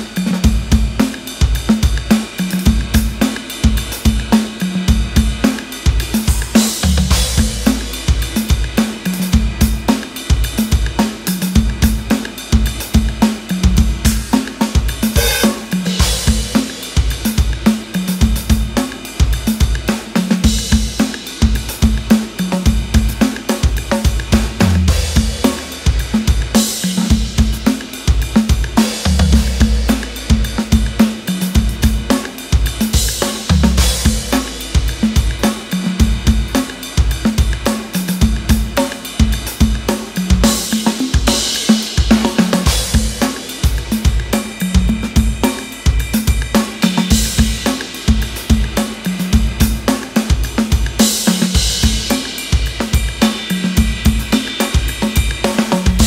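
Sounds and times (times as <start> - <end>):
cymbal crashes: 0.0 - 56.0
drum machine percussion: 0.0 - 56.0
rock drum beat: 0.0 - 56.0.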